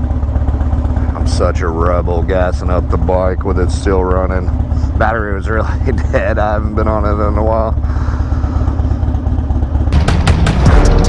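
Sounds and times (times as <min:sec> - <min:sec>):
motorcycle engine idling: 0:00.0 - 0:11.0.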